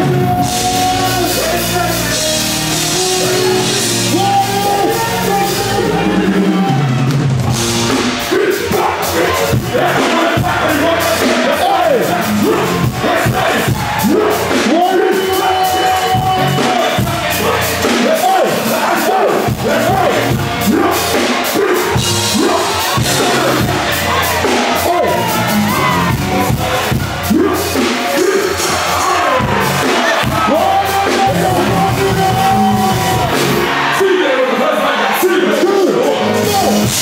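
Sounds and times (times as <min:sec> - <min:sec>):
performer rapping vocals: 0:00.0 - 0:02.4, 0:03.0 - 0:06.9, 0:07.9 - 0:37.0
crowd shouting along: 0:00.0 - 0:37.0
hip-hop band with keyboards and beat: 0:00.0 - 0:37.0.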